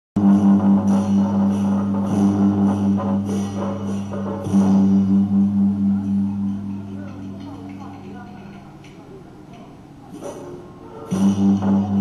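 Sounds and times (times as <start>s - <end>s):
held low wind note: 0.2s - 7.4s
percussion strikes: 0.2s - 12.0s.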